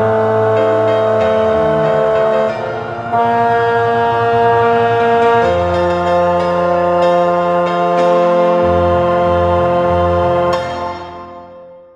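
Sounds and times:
piano: 0.0s - 11.9s.

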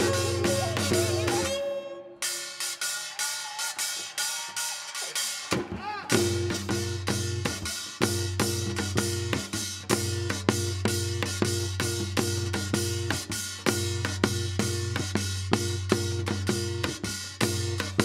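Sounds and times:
drum beating fast: 0.0s - 1.6s, 2.6s - 18.0s
traditional ensemble music: 0.0s - 14.0s.

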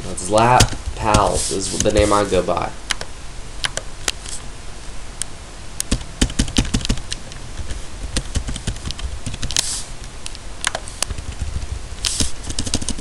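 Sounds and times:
computer keyboard typing: 5.9s - 9.6s, 10.6s - 13.0s.

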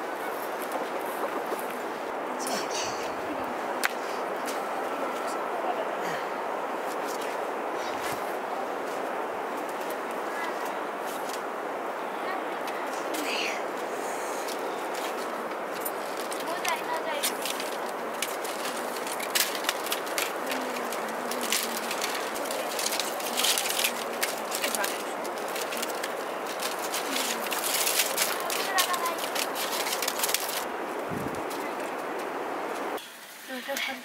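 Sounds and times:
plant strips rustling and clicking: 14.4s - 30.7s.

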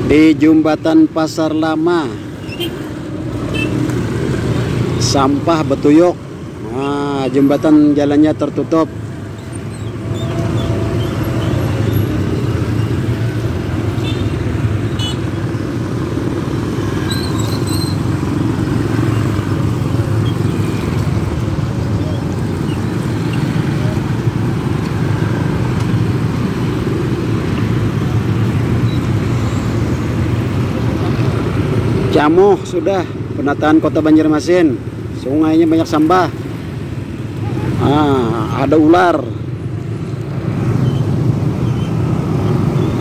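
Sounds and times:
road traffic rumble: 0.0s - 43.0s.

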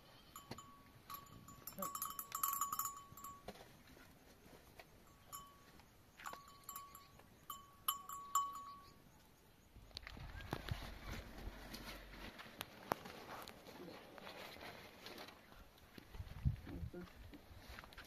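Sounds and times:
livestock bells clinking: 0.0s - 3.8s, 5.0s - 9.1s.

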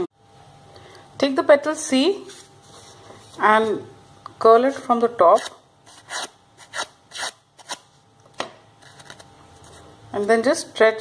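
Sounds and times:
paper scraping on scissor blade: 5.3s - 7.8s
faint paper rustling: 8.8s - 10.4s.

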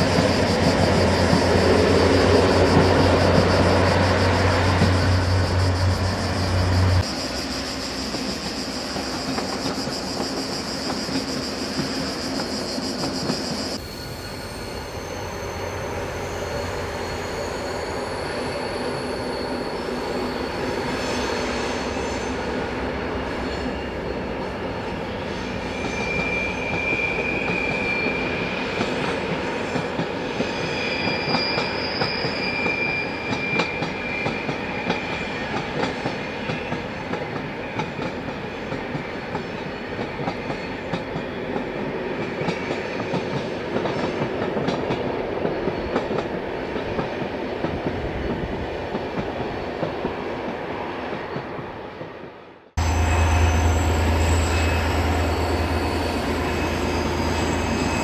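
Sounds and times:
high wheel squeal: 0.0s - 37.0s, 52.8s - 58.0s
diesel locomotive rumbling past: 0.0s - 58.0s.

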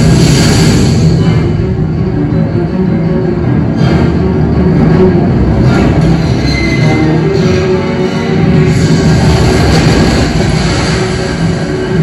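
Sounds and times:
loud rumbling sound effect: 0.0s - 2.0s, 8.4s - 12.0s
film music: 0.0s - 12.0s.

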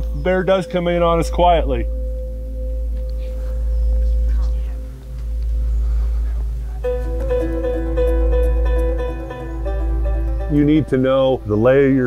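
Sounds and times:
ambient drone: 0.0s - 12.0s
plucked banjo music: 6.8s - 12.0s.

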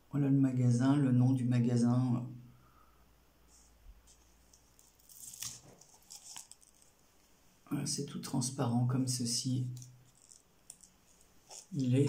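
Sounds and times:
ribbon rustling and crackling: 3.5s - 7.4s, 9.6s - 12.0s.

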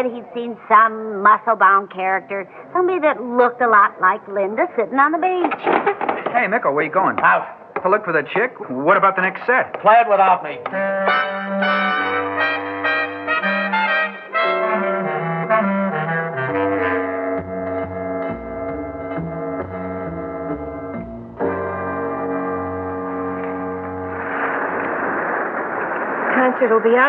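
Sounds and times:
brass jazz band music: 10.7s - 24.3s
steady rushing noise: 23.2s - 27.0s.

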